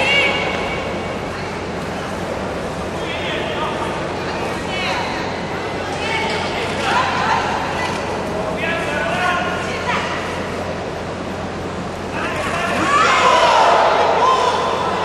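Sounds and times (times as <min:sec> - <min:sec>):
crowd murmur in large hall: 0:00.0 - 0:15.0
people shouting: 0:12.4 - 0:15.0.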